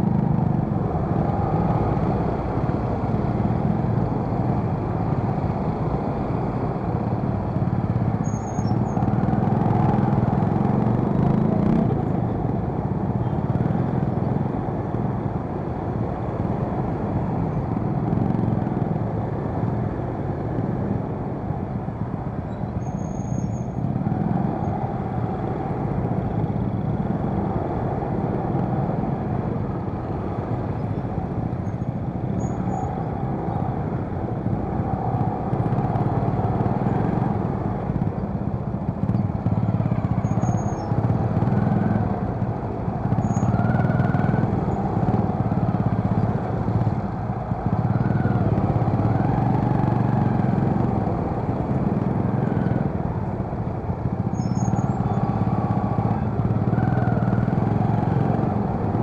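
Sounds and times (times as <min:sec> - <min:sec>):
low engine hum: 0:00.0 - 0:59.0
street traffic noise: 0:00.0 - 0:59.0.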